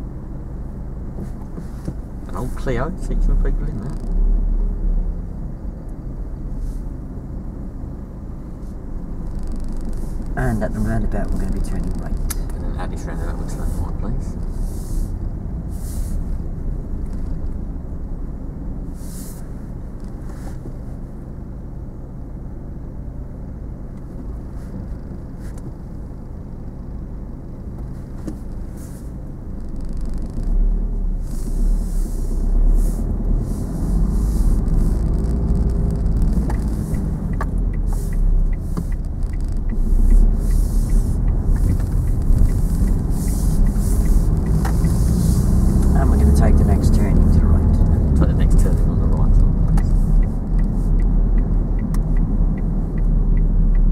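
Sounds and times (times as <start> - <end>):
car engine accelerating: 0.0 - 22.2, 23.3 - 53.9
low road rumble: 0.0 - 53.9.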